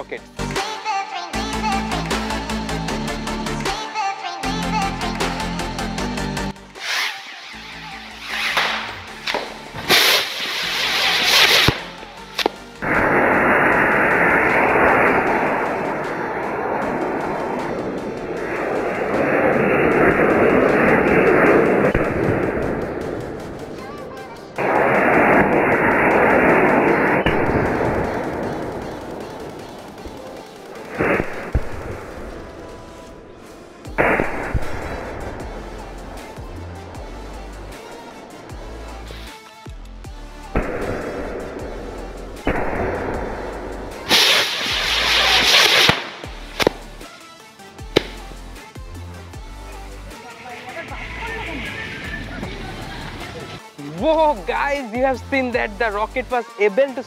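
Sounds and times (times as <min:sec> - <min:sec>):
firework rockets rushing hiss: 0:06.8 - 0:39.5, 0:40.5 - 0:53.8
sharp cracks: 0:08.2 - 0:33.1, 0:43.9 - 0:47.1, 0:48.0 - 0:48.4.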